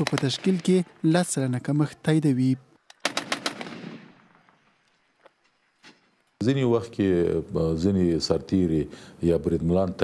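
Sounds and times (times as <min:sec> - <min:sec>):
automatic rifle fire: 0:00.0 - 0:00.7, 0:03.0 - 0:04.5.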